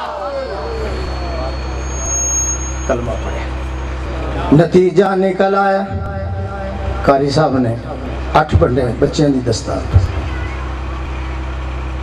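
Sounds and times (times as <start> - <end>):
thin high whistle: 0.0 - 4.5
faint voices: 0.0 - 4.6, 9.7 - 12.0
steady low hum: 0.0 - 12.0.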